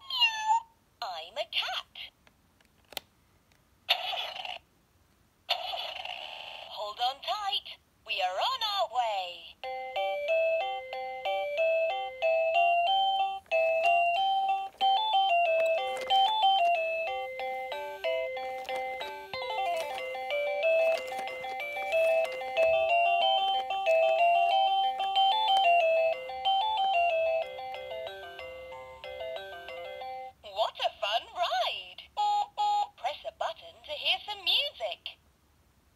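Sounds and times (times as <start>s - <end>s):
toy beeping melody: 9.6s - 30.4s, 32.2s - 33.0s.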